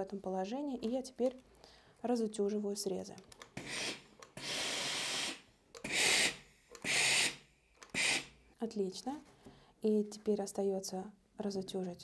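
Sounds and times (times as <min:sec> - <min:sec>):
steam iron hissing bursts: 0:03.6 - 0:08.3.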